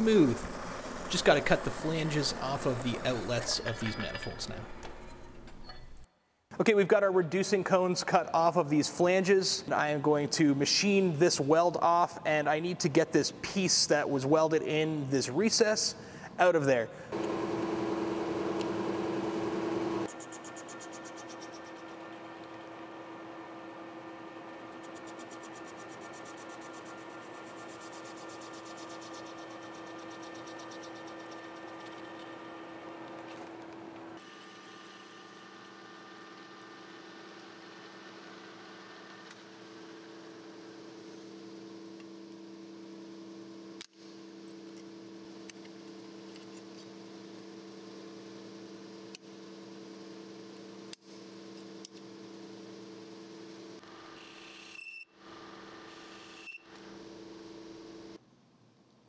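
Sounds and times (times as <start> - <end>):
metal lathe machining steel: 0.0 - 4.5.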